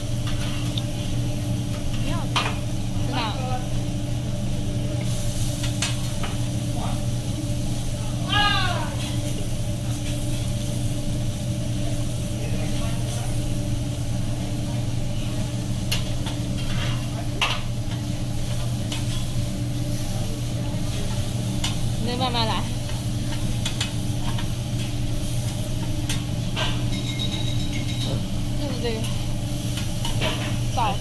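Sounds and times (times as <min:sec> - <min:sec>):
food sizzling on a griddle: 0:00.0 - 0:31.0
steady low hum: 0:00.0 - 0:31.0.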